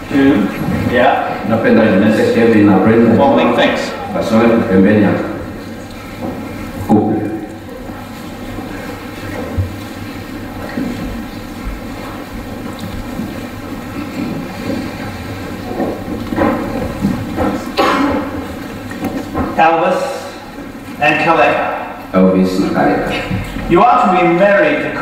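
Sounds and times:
low rumble of hall room noise: 0.0 - 25.0.

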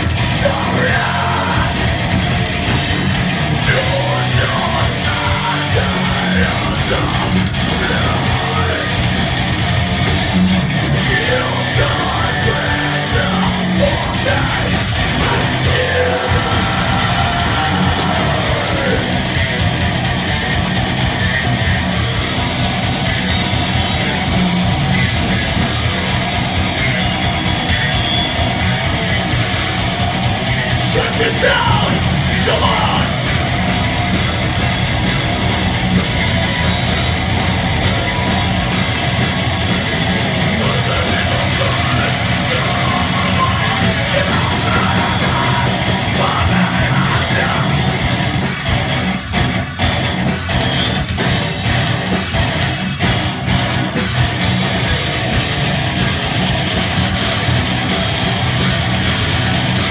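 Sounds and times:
distorted electric guitar riffing: 0.0 - 59.9
drum kit: 0.0 - 59.9
harsh yelled vocal: 0.0 - 59.9
heavy metal band playing: 0.0 - 59.9.

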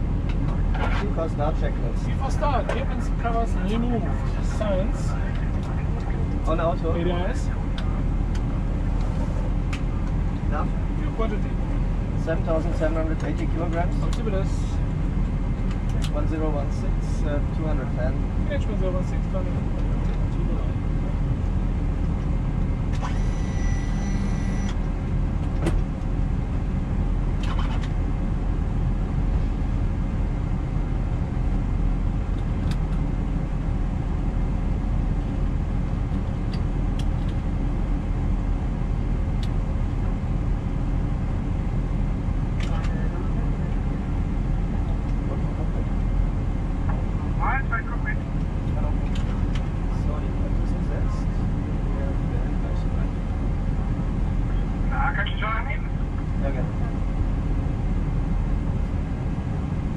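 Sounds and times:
cockpit ventilation rumble and hum: 0.0 - 59.9
short electronic tone: 23.1 - 24.8.

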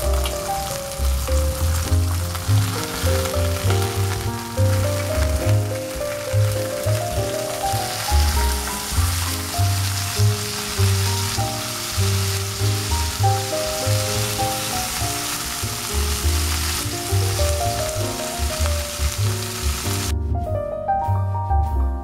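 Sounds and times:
meat sizzling in oil: 0.0 - 20.1
music with pulsing bass: 0.0 - 22.0.

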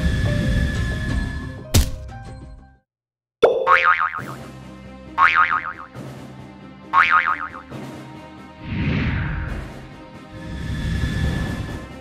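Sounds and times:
cartoon boing sound effects: 3.4 - 4.4, 5.2 - 5.9, 7.0 - 7.7
background music: 3.6 - 12.0.

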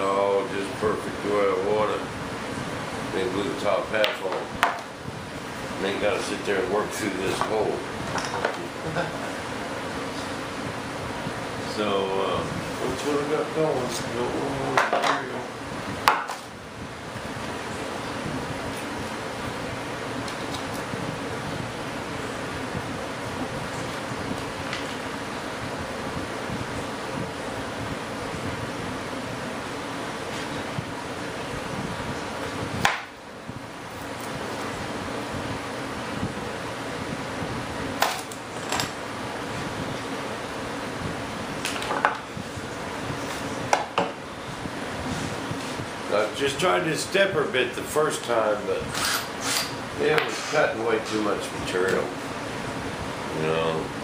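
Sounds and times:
steady mechanical fan hum: 0.0 - 54.0.

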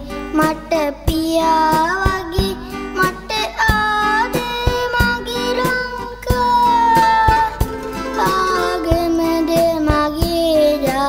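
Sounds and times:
boy singing: 0.0 - 11.0
guitar: 0.0 - 11.0
steady drum beat: 1.1 - 10.6.

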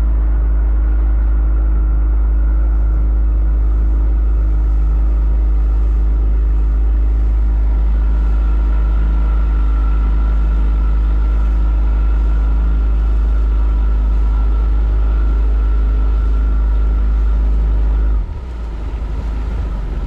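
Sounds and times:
motorboat engine rumbling: 0.0 - 20.0
water washing along hull: 2.0 - 20.0.

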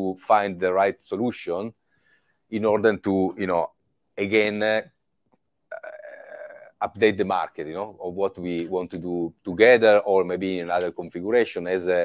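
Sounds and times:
man's rough uhh: 5.7 - 6.9.

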